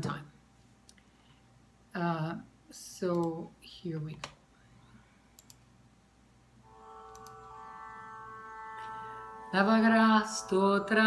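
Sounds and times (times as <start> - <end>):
faint clicks: 5.4 - 5.6
steady drone note: 6.6 - 11.0.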